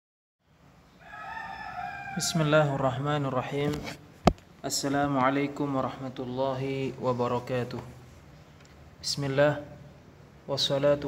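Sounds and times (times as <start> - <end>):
rooster crowing: 0.9 - 2.8.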